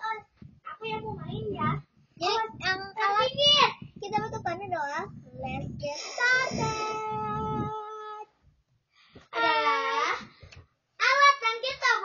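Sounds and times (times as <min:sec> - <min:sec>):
girls chattering: 0:02.2 - 0:08.3.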